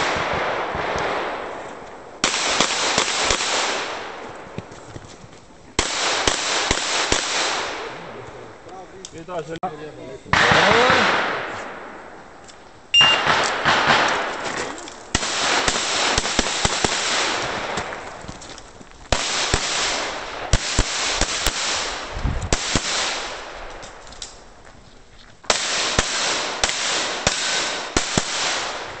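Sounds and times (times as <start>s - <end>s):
pistol firing rapid shots: 2.2s - 4.2s, 5.8s - 7.9s, 13.0s - 14.4s, 15.1s - 17.9s, 19.1s - 23.6s, 25.5s - 29.0s
shot timer beep: 12.9s - 13.3s.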